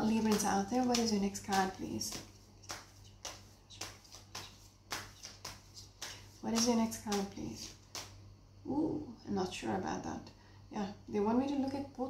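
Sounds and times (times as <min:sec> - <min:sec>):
cards being shuffled: 0:00.0 - 0:08.2.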